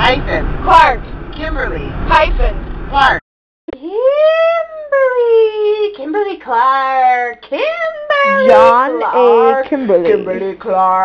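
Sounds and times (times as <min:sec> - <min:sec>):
high-pitched howling voice: 0:08.1 - 0:10.4.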